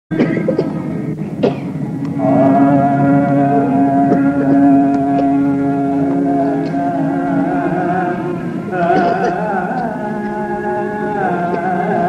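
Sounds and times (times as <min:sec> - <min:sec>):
person coughing: 0:00.2 - 0:00.8, 0:01.4 - 0:01.8, 0:09.0 - 0:09.4
tanpura drone: 0:00.7 - 0:12.0.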